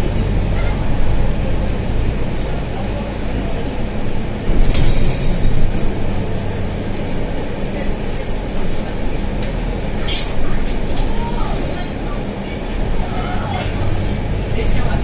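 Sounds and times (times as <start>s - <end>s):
bus diesel engine droning: 0.0s - 15.0s.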